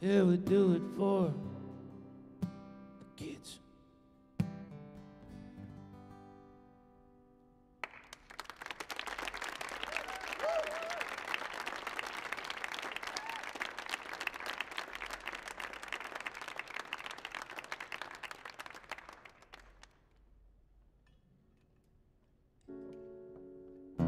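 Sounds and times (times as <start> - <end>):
audience applauding: 7.8 - 20.0.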